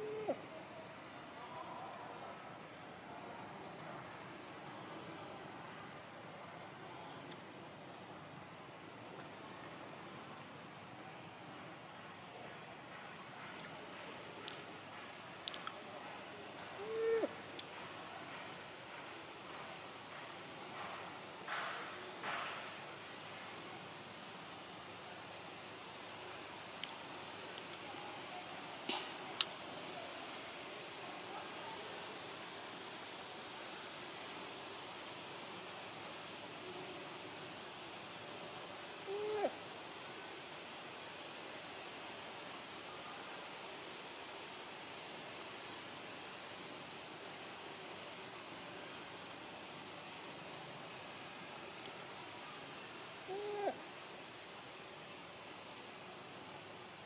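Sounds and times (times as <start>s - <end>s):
low hooting call: 0.0s - 0.6s, 16.7s - 17.4s, 39.0s - 39.6s, 53.2s - 53.9s
forest background: 0.0s - 57.0s
steady background hiss: 0.0s - 57.0s.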